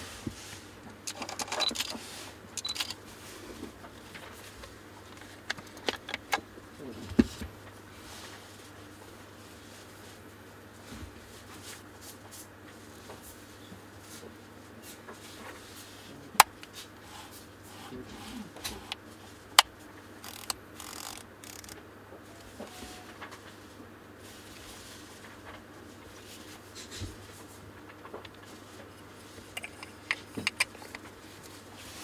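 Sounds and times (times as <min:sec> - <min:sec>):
camera lens handling clicks: 0:20.2 - 0:21.8.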